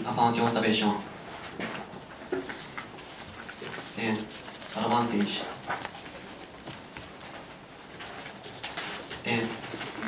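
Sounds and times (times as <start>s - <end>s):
paper rustling: 2.4s - 10.0s.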